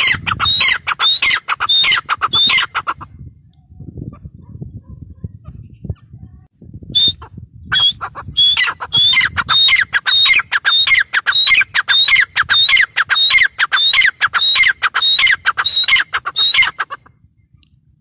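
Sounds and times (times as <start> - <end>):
francolin shrill calls: 0.0 - 3.0, 7.0 - 17.0.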